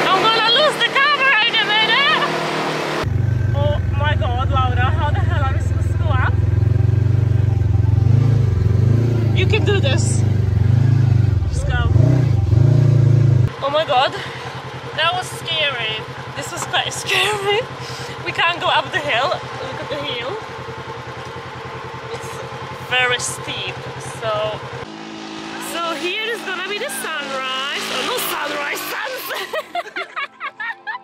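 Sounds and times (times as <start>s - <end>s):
women's voices: 0.0s - 2.3s, 3.6s - 6.4s, 9.4s - 10.2s, 11.5s - 12.0s, 13.5s - 20.4s, 22.1s - 24.7s, 25.6s - 30.3s
buggy engine running: 0.0s - 30.2s.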